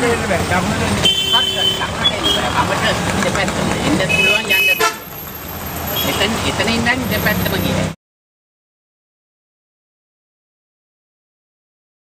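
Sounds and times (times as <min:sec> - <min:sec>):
people talking: 0:00.0 - 0:05.0, 0:05.9 - 0:08.0
traffic motor noise: 0:00.0 - 0:08.0
car horn toots: 0:01.0 - 0:02.6, 0:04.0 - 0:05.1.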